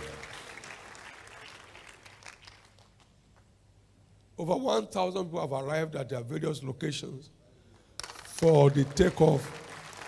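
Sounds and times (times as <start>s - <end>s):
crowd applauding: 0.0s - 3.0s, 8.0s - 10.0s.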